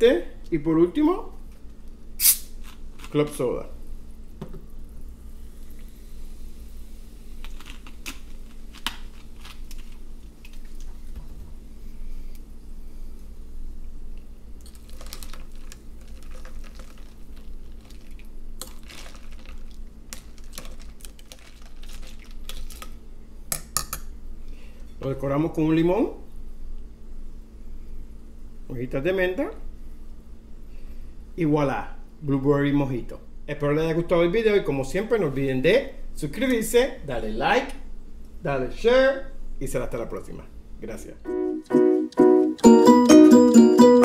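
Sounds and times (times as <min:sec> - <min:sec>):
steady low hum: 0:00.0 - 0:42.7
soda pouring into glass of ice: 0:14.6 - 0:19.8
spoon stirring and clinking ice: 0:14.7 - 0:17.1, 0:17.8 - 0:19.6.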